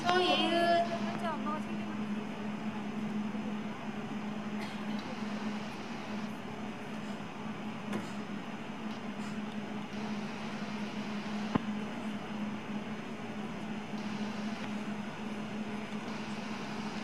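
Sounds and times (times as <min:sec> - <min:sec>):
low hum of ice rink: 0:00.0 - 0:17.0.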